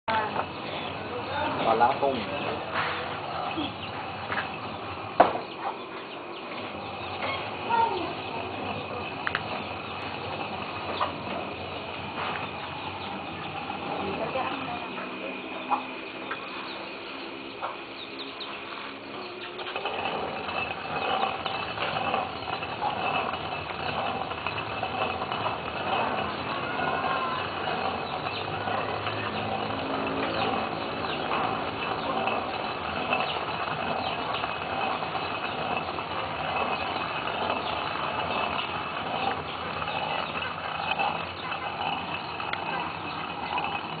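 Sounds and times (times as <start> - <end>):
stone hand mill grinding beans: 0.1 - 44.0.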